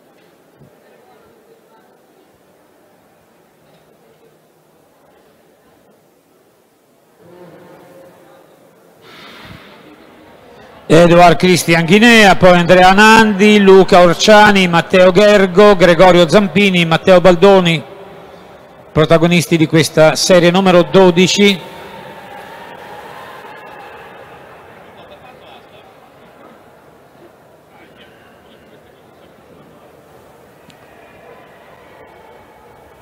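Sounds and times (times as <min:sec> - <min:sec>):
murmur of distant crowd voices: 0:00.0 - 0:33.0
hall noise hiss: 0:07.0 - 0:11.2.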